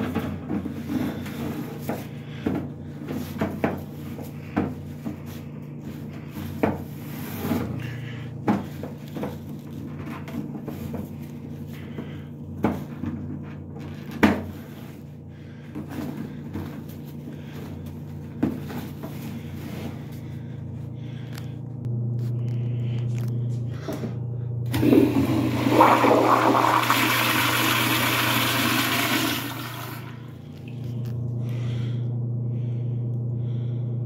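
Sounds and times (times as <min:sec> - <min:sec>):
steady low hum: 0:00.0 - 0:34.0
toilet flushing: 0:24.7 - 0:30.3.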